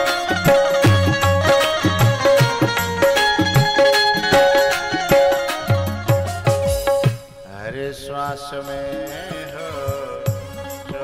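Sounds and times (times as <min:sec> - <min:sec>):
person singing devotional music: 0:00.0 - 0:11.0.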